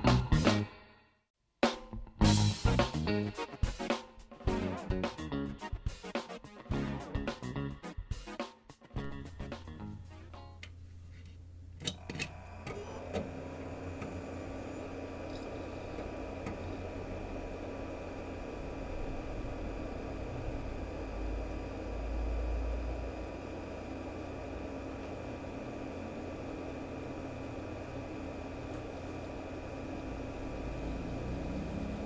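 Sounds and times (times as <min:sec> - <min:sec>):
background music: 0:00.0 - 0:10.7
small blower fan whirring: 0:09.0 - 0:32.0
computer humming: 0:11.5 - 0:32.0.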